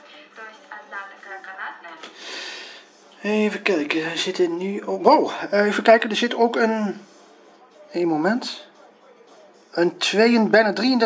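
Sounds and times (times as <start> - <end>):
faint speech: 0.0 - 11.0.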